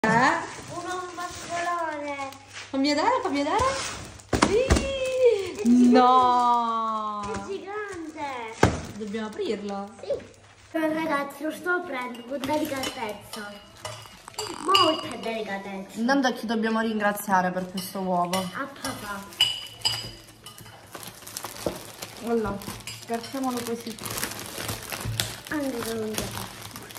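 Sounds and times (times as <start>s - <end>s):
cellophane crinkling: 0.1s - 15.6s, 18.6s - 26.9s.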